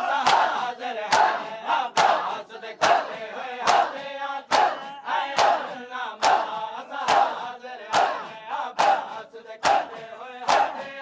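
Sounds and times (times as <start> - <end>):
men chanting: 0.0 - 11.0
hands slapping bare chests: 0.2 - 1.4, 2.0 - 10.9.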